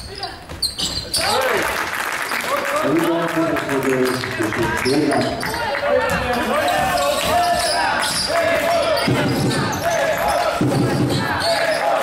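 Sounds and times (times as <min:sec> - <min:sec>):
spectators shouting and chanting: 0:04.7 - 0:12.0
basketball dribbling on wooden floor: 0:09.0 - 0:11.5.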